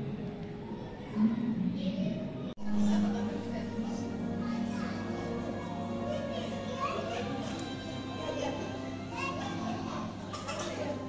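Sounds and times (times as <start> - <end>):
children and visitors chattering: 0.0 - 11.0
background music: 2.6 - 11.0.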